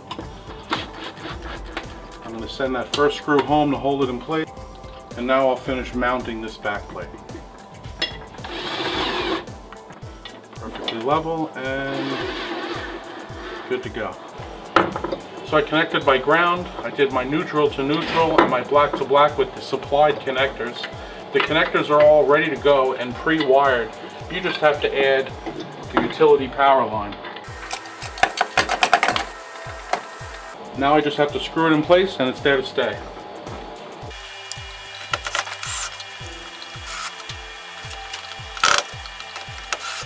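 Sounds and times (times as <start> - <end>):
background music: 0.0 - 40.0
cordless drill driving a screw: 8.4 - 9.5, 34.1 - 40.0.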